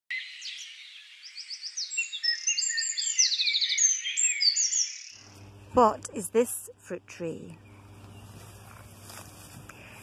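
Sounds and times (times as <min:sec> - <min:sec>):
songbirds singing: 0:00.1 - 0:06.2, 0:07.3 - 0:10.0.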